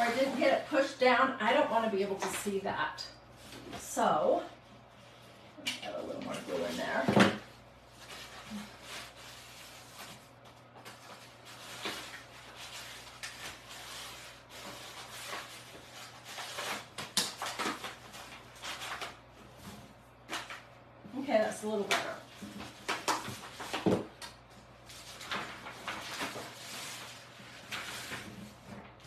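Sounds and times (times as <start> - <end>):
paper rustling and crinkling: 7.8 - 20.7, 21.8 - 29.0.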